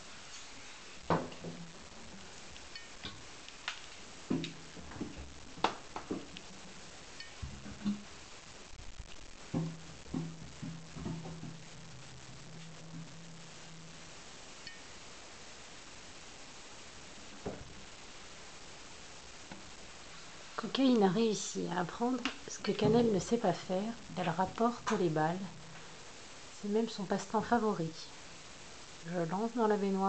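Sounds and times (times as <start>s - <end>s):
ball knocking in a bathtub: 9.5s - 11.6s.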